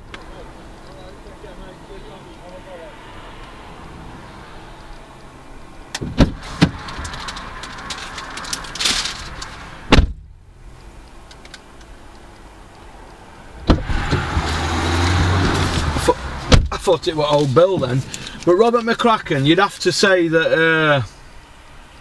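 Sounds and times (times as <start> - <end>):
outside noise: 0.0 - 22.0
car door clicks and thuds: 5.9 - 7.9, 8.6 - 10.3, 13.6 - 14.6, 15.4 - 18.4.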